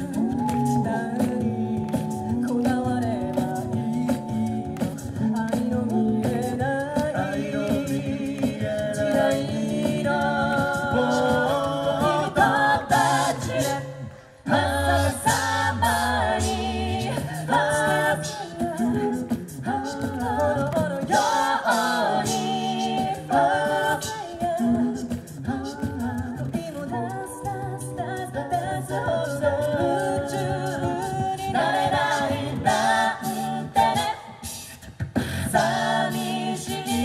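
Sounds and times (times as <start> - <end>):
backing voices in harmony: 0.0 - 37.0
beatboxed vocal percussion: 0.0 - 37.0
woman singing lead vocal: 0.0 - 37.0.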